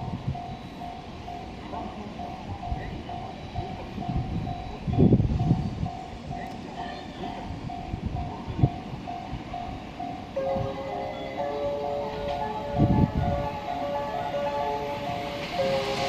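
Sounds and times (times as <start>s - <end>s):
level crossing warning bell: 0.0s - 16.0s.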